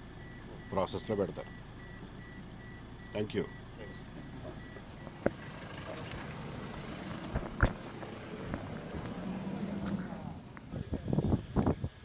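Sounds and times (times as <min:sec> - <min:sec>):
car engine pulling away: 0:00.0 - 0:11.4
street noise: 0:00.0 - 0:12.0
repeating electronic beep: 0:01.4 - 0:05.2.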